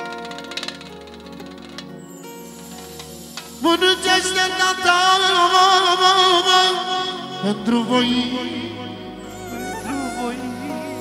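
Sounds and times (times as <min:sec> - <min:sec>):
quick clicks: 0:00.0 - 0:02.0.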